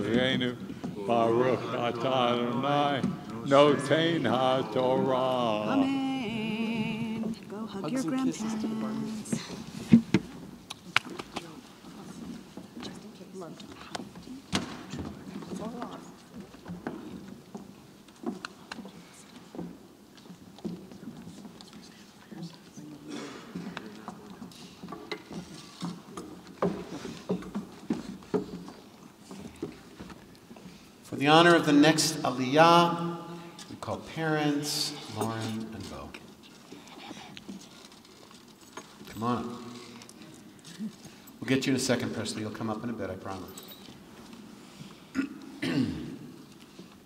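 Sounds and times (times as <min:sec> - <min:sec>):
murmur of voices in hall: 0:00.0 - 0:47.0.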